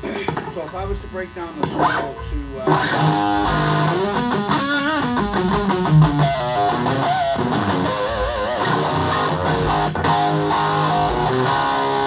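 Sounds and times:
electric guitar lead with vibrato: 1.5 - 12.0.

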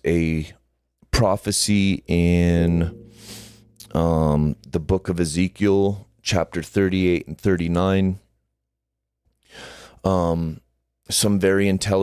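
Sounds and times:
intake of breath: 9.5 - 10.0.

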